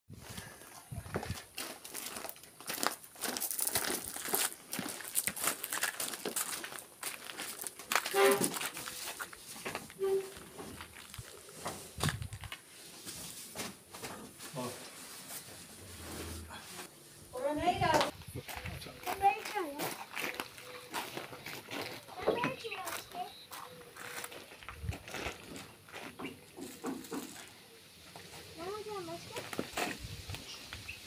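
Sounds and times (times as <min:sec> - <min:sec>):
footsteps: 0:00.2 - 0:28.5
packaging rustling and crinkling: 0:01.2 - 0:13.6.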